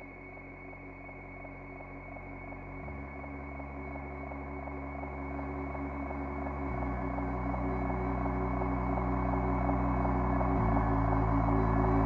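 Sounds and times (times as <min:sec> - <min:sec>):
synthesizer drone tones: 0:00.8 - 0:12.0
deep bass tone: 0:02.4 - 0:12.0.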